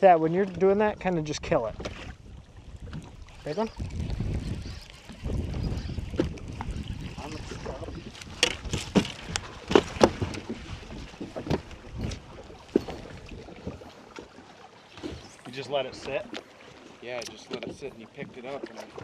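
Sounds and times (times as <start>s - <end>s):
wind rumble on microphone: 0.8s - 14.0s.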